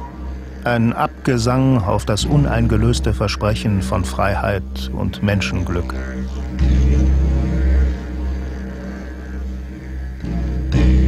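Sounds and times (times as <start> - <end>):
deep sustained tuba drone: 0.0 - 11.0.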